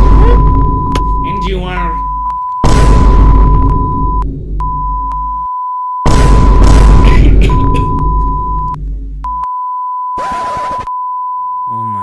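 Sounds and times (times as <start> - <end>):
censor bleep tone: 3.5 - 6.0, 7.5 - 12.0.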